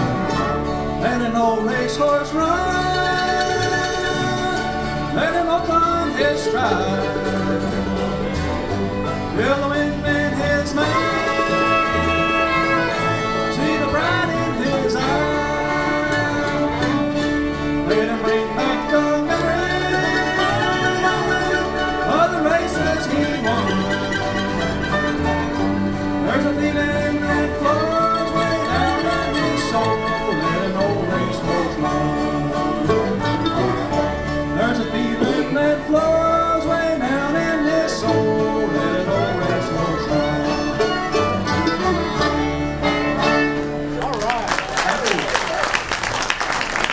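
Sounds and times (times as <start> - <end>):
fiddle melody: 0.0 - 44.1
strummed acoustic guitars: 0.0 - 46.9.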